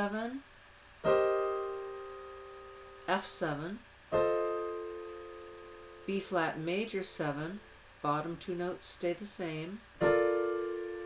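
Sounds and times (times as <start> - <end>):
digital piano chord ringing: 1.0 - 7.7, 10.0 - 11.0.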